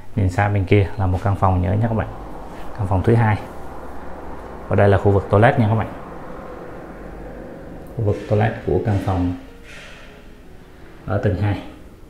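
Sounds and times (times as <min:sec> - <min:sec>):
faint hum: 0:00.0 - 0:11.2.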